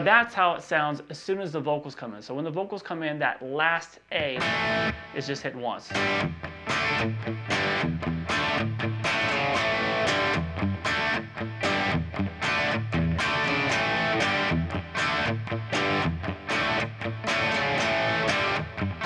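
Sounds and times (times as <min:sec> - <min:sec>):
electric guitar rock riff: 0:04.2 - 0:19.0.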